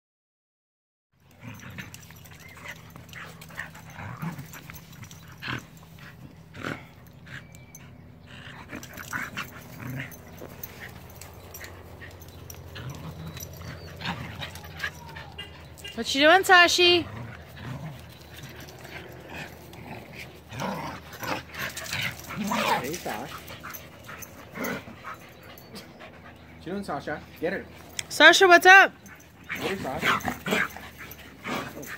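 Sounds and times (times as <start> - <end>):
dogs growling: 1.2 - 16.0, 16.7 - 28.1, 28.9 - 31.9
steady low hum: 1.2 - 31.9
dogs scuffling: 17.3 - 26.5, 28.9 - 31.9.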